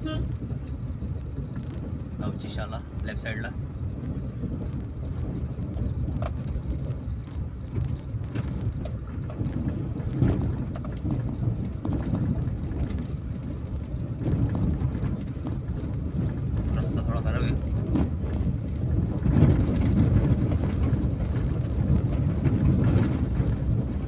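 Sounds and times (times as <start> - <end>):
car engine and tyre rumble: 0.0 - 24.0.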